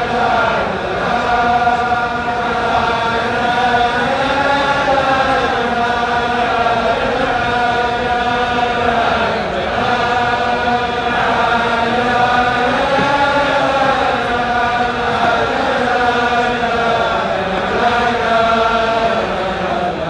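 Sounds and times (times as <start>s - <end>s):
crowd of men singing in unison: 0.0s - 20.0s.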